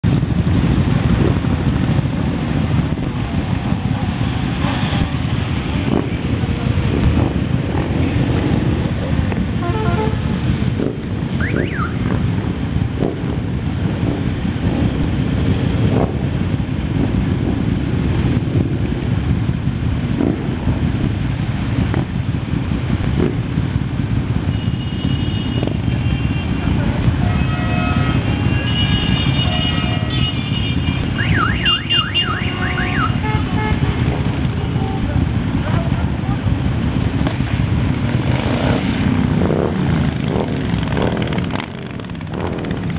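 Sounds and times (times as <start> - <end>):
motorcycle engines rumbling: 0.0 - 42.9
motorcycles riding past: 23.2 - 42.9
electronic siren warbling: 31.2 - 33.2.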